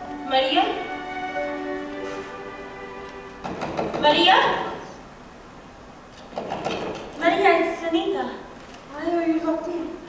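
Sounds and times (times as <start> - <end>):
held music chord: 0.0 - 4.8
knocks and clatter at a door: 3.4 - 4.1, 6.3 - 7.1.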